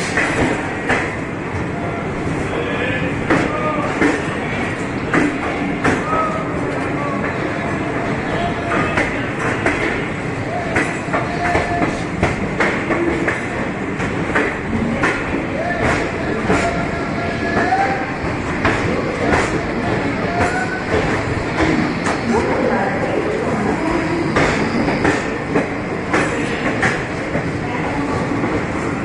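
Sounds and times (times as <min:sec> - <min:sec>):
train rumbling: 0:00.0 - 0:29.0
voices: 0:00.2 - 0:29.0.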